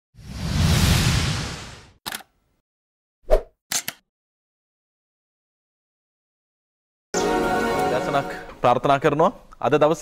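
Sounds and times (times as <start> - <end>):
swish: 0.2 - 2.0.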